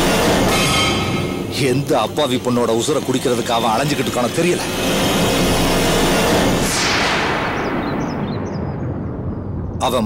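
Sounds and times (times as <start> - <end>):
loud rumbling noise: 0.0 - 10.0.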